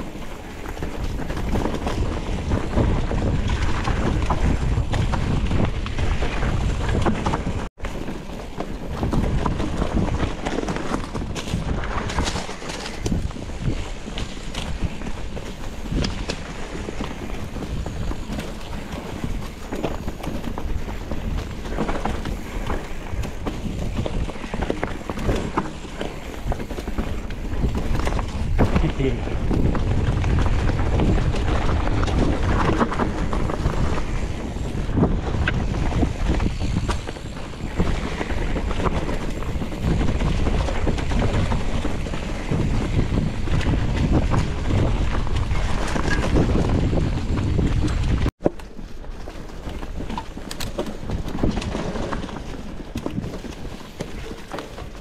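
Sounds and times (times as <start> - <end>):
mountain bike clattering over roots: 0.0 - 55.0
wind rumble on microphone: 0.0 - 55.0.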